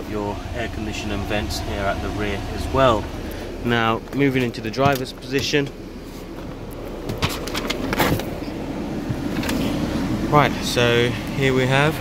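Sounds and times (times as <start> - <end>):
air-conditioning fan rushing: 0.0 - 12.0
clicks and knocks of handling: 6.4 - 8.5.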